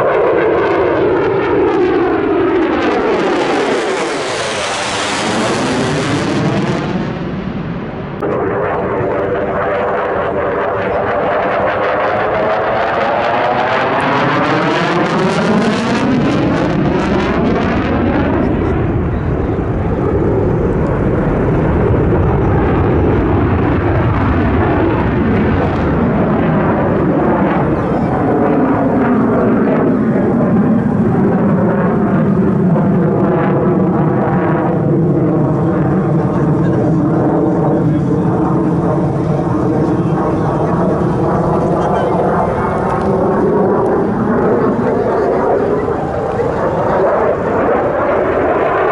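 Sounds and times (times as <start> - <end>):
fighter jet flying past: 0.0 - 48.9.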